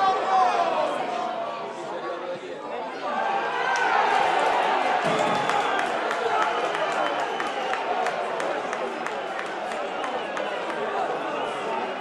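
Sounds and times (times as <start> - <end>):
stadium crowd noise: 0.0 - 12.0.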